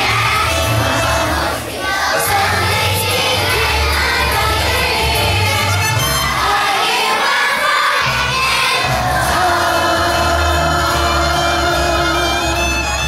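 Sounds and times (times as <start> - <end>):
children's choir singing: 0.0 - 13.0
musical accompaniment: 0.0 - 13.0.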